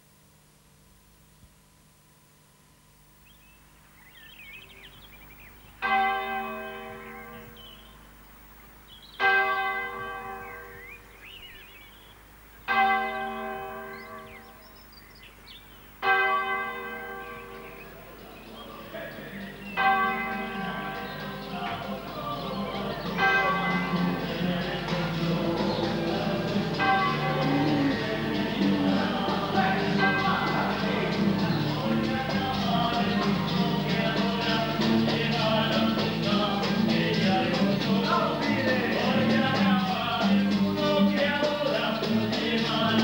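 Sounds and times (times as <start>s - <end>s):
church bell tolling: 5.8s - 7.6s, 9.2s - 10.8s, 12.7s - 14.6s, 16.0s - 19.2s, 19.8s - 34.8s.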